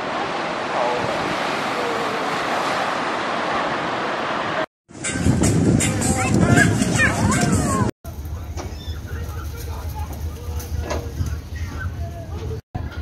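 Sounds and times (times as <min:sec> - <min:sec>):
ocean surf on sandy beach: 0:00.0 - 0:04.7
wind on microphone: 0:05.0 - 0:07.9.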